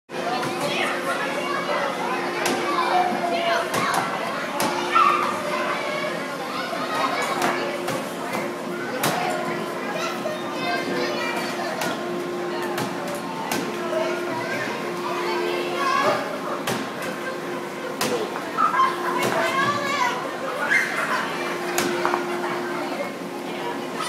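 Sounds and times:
children playing and talking: 0:00.1 - 0:24.0.

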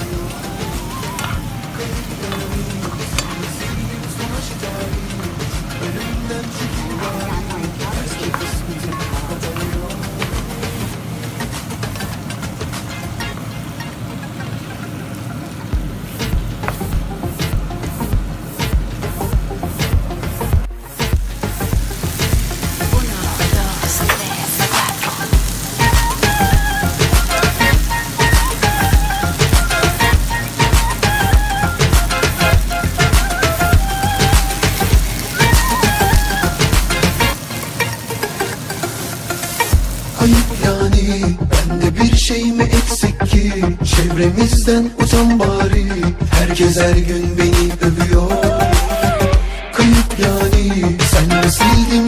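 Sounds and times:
background music: 0:00.0 - 0:15.0, 0:15.8 - 0:52.0
chicken sizzling in a frying pan: 0:00.0 - 0:41.7.

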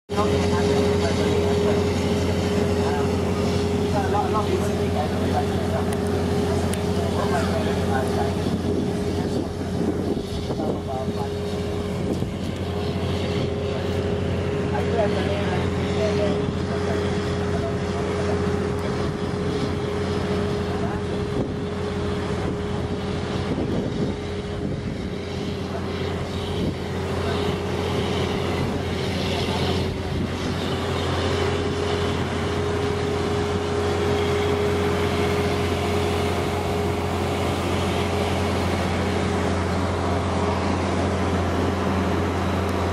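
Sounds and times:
boat engine droning: 0:00.0 - 0:42.9.

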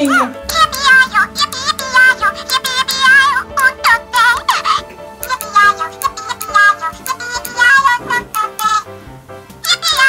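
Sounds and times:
low sustained backing: 0:00.0 - 0:08.3.

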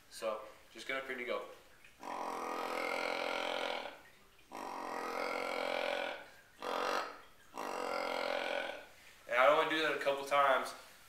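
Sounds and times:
deer call low grunts: 0:02.0 - 0:09.0.

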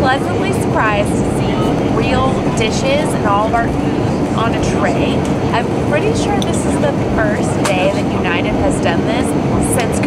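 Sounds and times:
airliner cabin rumble: 0:00.0 - 0:10.0
person talking: 0:00.0 - 0:10.0.

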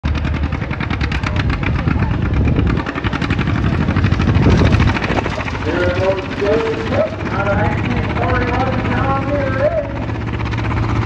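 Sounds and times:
tractor engine at high revs: 0:00.0 - 0:11.0.

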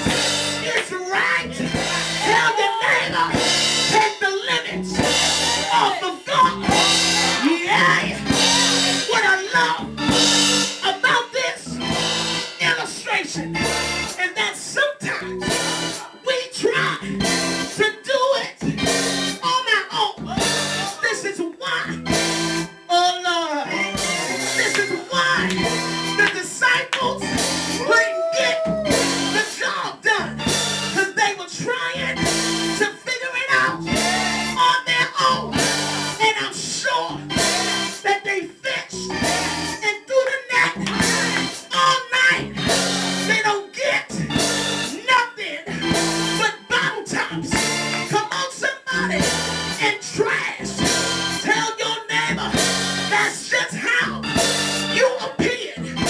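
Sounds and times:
person singing: 0:00.0 - 0:09.9, 0:23.4 - 0:30.0, 0:33.5 - 0:36.2
band playing: 0:00.0 - 0:56.0
keyboard chords: 0:00.0 - 0:56.0
live church music: 0:00.0 - 0:56.0
drum kit with cymbal crashes: 0:03.3 - 0:04.1, 0:04.9 - 0:06.0, 0:06.6 - 0:07.6.

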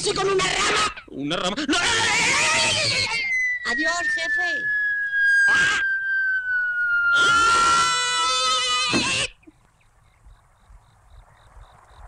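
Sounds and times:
cartoon falling whistle: 0:02.1 - 0:09.4
man screaming: 0:07.1 - 0:09.4.

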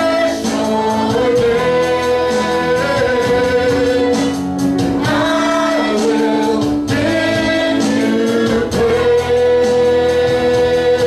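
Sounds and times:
acoustic guitar: 0:00.0 - 0:11.0
drums: 0:00.0 - 0:11.0
keyboard: 0:00.0 - 0:11.0
man singing: 0:00.0 - 0:11.0.

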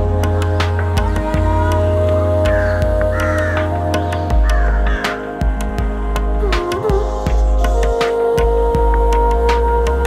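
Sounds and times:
background music with low drone: 0:00.0 - 0:10.0
crow cawing: 0:01.3 - 0:05.3.

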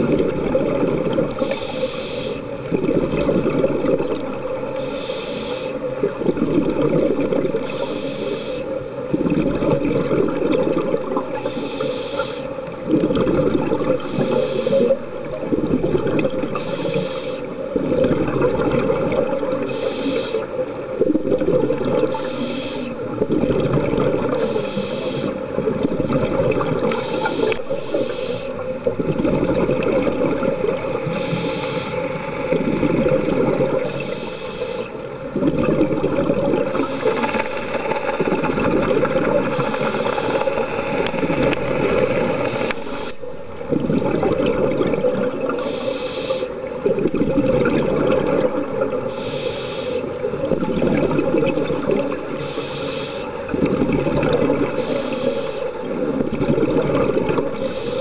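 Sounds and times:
regulator hiss on inhale: 0:01.2 - 0:02.6, 0:04.7 - 0:05.9, 0:07.4 - 0:08.8, 0:11.2 - 0:12.8, 0:13.8 - 0:15.0, 0:16.4 - 0:17.6, 0:19.3 - 0:20.7, 0:22.0 - 0:23.2, 0:24.3 - 0:25.7, 0:26.8 - 0:29.0, 0:30.5 - 0:35.1, 0:36.6 - 0:43.4, 0:45.4 - 0:46.8, 0:48.8 - 0:50.3, 0:52.2 - 0:53.6, 0:54.6 - 0:56.2, 0:57.4 - 0:58.0
exhaust bubbles gushing: 0:02.6 - 0:04.4, 0:05.9 - 0:07.7, 0:12.9 - 0:14.1, 0:15.2 - 0:16.6, 0:17.8 - 0:19.7, 0:23.1 - 0:24.5, 0:25.6 - 0:27.7, 0:28.8 - 0:31.2, 0:32.1 - 0:34.0, 0:35.3 - 0:37.4, 0:38.2 - 0:42.8, 0:43.6 - 0:45.6, 0:46.6 - 0:49.1, 0:50.3 - 0:52.3, 0:53.4 - 0:54.8, 0:55.8 - 0:57.6.

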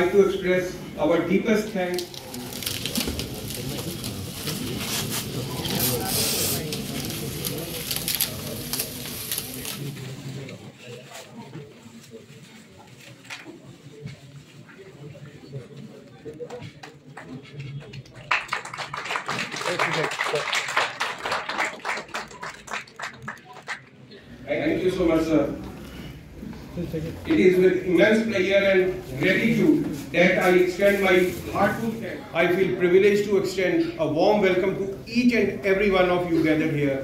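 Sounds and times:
murmur of voices: 0:00.0 - 0:37.0
foil wrapping crinkling and tearing: 0:02.0 - 0:10.0
audience applauding: 0:16.8 - 0:24.0.

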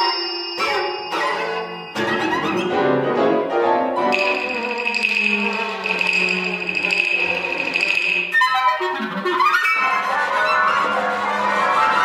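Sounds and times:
chamber ensemble playing: 0:00.0 - 0:12.0.

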